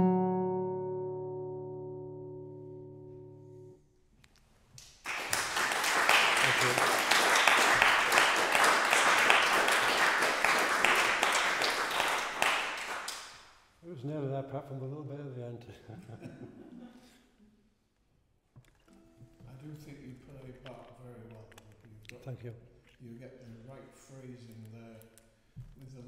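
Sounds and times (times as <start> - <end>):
audience applauding: 5.0 - 13.5
man speaking: 6.4 - 7.0, 13.8 - 16.0, 19.5 - 25.1.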